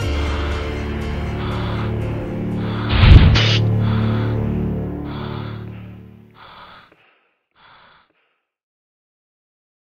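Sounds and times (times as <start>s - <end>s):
person gasping: 5.1s - 8.5s.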